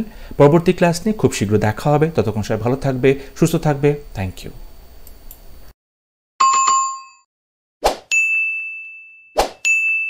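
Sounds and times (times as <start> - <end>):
bright ding: 8.1 - 10.0.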